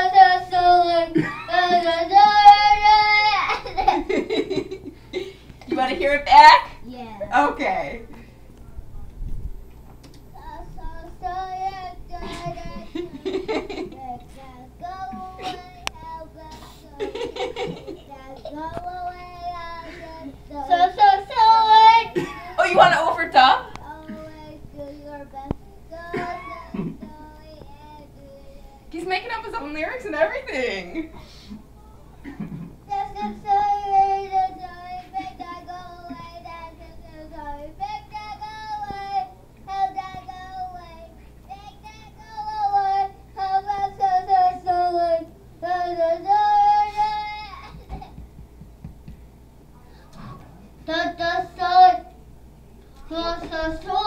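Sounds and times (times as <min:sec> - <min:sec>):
young child singing: 0:00.0 - 0:03.9, 0:10.3 - 0:22.6, 0:23.8 - 0:28.9, 0:32.9 - 0:48.1, 0:50.8 - 0:52.2, 0:53.0 - 0:54.0.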